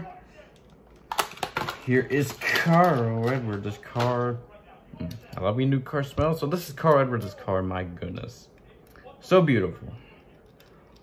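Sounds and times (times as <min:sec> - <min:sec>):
plastic packaging clicks: 0:00.9 - 0:04.4.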